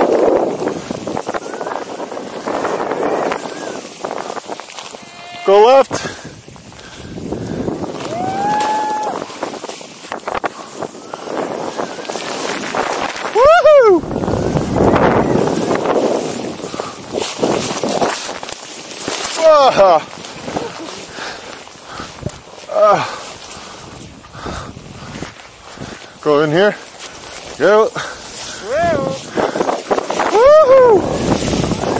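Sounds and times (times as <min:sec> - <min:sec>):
rushing hiss of snow spray: 0:00.0 - 0:31.9
wind: 0:00.0 - 0:31.9
person whooping loudly: 0:08.0 - 0:09.3, 0:13.3 - 0:14.1, 0:28.6 - 0:29.3, 0:30.2 - 0:31.4.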